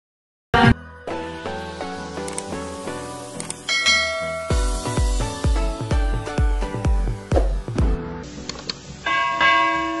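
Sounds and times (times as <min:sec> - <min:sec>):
quick clicks: 0:02.2 - 0:02.5
bell chime ringing: 0:03.7 - 0:05.0, 0:09.0 - 0:10.0.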